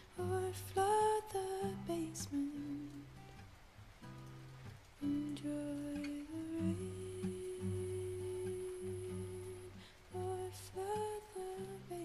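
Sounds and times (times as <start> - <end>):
soft acoustic guitar: 0.0 - 12.0
person humming a melody: 5.0 - 12.0.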